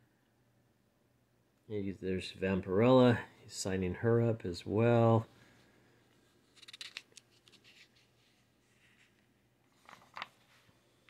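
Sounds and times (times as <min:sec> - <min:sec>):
paper page rustling and turning: 0:06.5 - 0:10.9.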